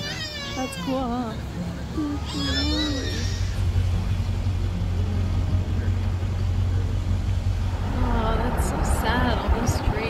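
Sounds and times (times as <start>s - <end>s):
car interior road rumble: 0.8s - 10.0s.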